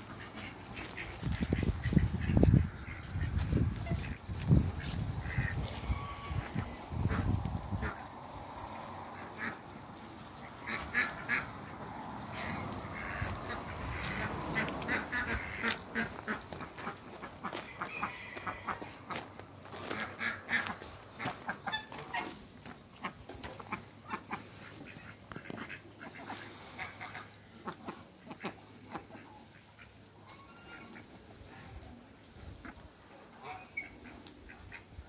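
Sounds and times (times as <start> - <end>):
ducks quacking: 0.0 - 35.0.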